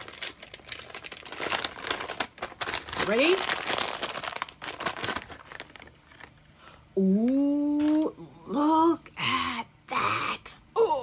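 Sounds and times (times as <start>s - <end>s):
paper envelope crinkling: 0.0s - 6.5s.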